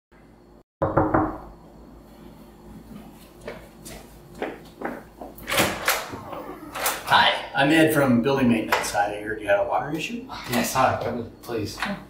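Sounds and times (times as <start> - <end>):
knocks on a door: 0.8 - 1.4.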